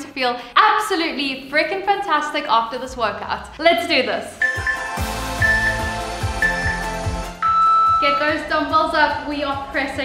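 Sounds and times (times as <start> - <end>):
background music with steady beat: 0.0 - 10.0
timer beeps: 4.4 - 8.2.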